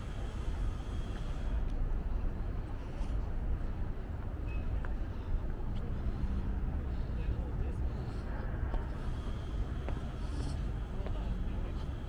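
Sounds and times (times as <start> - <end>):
city low rumble: 0.0 - 12.0.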